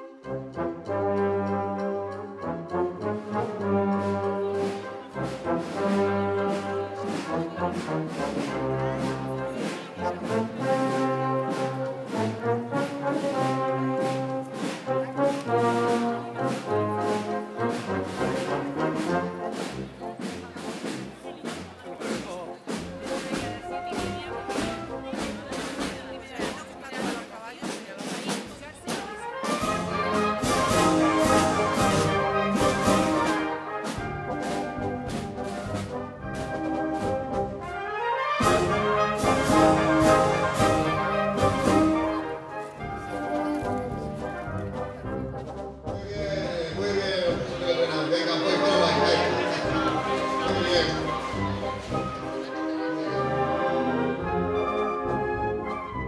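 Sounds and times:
brass band playing: 0.0 - 56.0.

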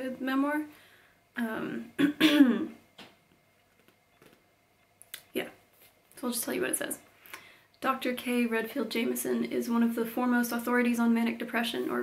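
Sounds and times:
woman clearing her throat: 2.0 - 2.8.

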